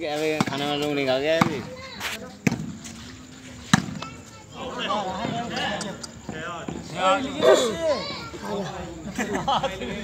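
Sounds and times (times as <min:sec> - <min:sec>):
men shouting: 0:06.4 - 0:09.1.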